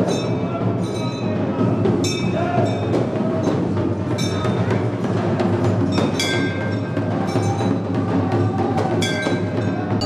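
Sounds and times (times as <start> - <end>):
rapid ritual drumming: 0.0 - 10.0.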